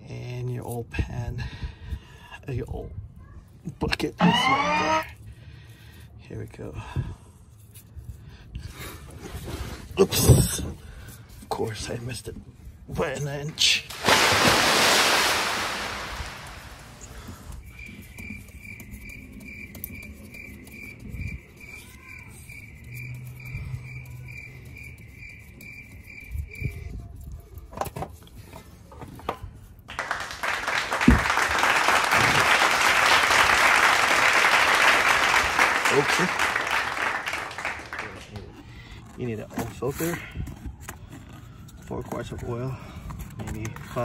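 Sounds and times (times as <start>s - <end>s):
oil pouring and splattering: 13.8s - 17.3s.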